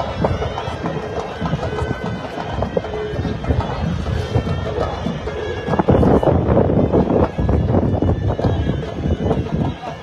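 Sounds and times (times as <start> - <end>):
outdoor crowd voices: 0.0 - 10.0
reedy wind instrument folk tune: 0.0 - 10.0.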